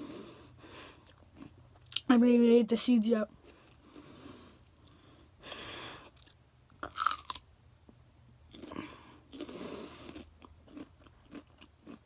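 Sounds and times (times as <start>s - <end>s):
chewing and crunching: 1.0s - 2.1s, 6.2s - 7.4s, 8.5s - 12.0s.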